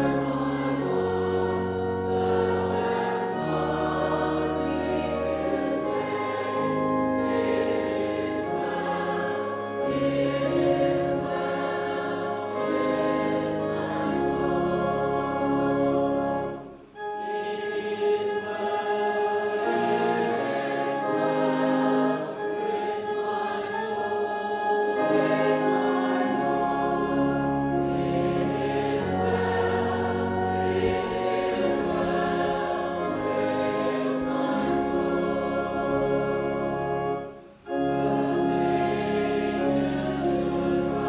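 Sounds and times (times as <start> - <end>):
choir and congregation singing hymn: 0.0 - 41.0.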